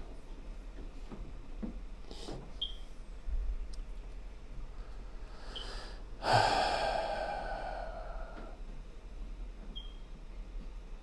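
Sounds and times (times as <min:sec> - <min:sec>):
person sighing: 0:06.2 - 0:08.6.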